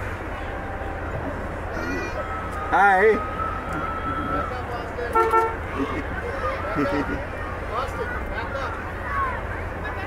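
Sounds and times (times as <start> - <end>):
crowd voices: 0.0 - 10.0
vehicle horn toots: 5.1 - 5.6.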